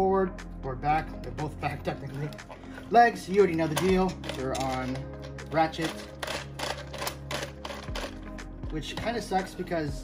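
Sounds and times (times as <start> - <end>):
plastic toy joints clicking: 3.6 - 5.0, 5.7 - 8.2.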